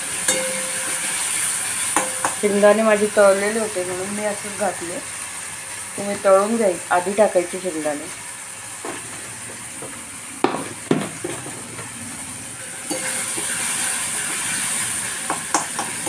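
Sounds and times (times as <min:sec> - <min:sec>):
vegetables sizzling in oil: 0:00.0 - 0:16.0
spoon clinking against pan: 0:00.3 - 0:01.1, 0:02.0 - 0:02.4.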